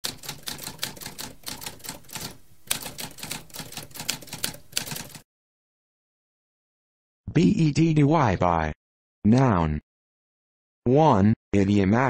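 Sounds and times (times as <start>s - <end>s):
typewriter typing: 0.0s - 5.2s.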